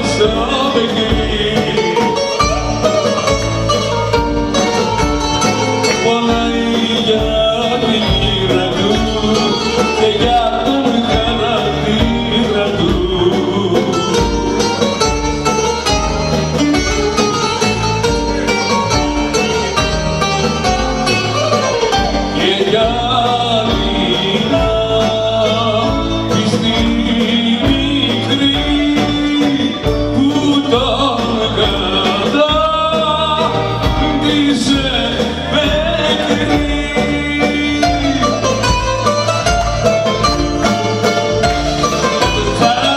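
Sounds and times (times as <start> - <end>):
bouzouki melody: 0.0 - 42.9
drum kit: 0.0 - 42.9
man singing: 0.0 - 42.9.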